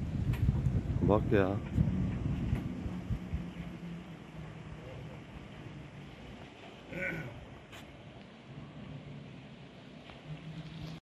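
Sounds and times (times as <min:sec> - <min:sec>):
wind rumble on microphone: 0:00.0 - 0:06.6
distant motorboat engine humming: 0:00.0 - 0:11.0.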